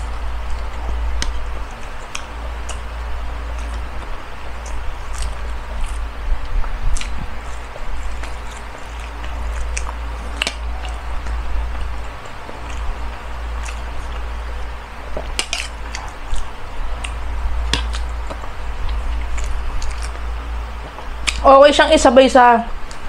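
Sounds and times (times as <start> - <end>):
chewing food wet mouth sounds: 0.0 - 21.4.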